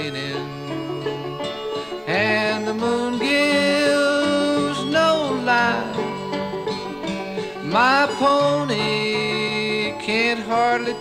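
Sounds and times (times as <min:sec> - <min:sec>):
banjo: 0:00.0 - 0:11.0
bending melody line: 0:00.0 - 0:11.0
guitar: 0:00.0 - 0:11.0.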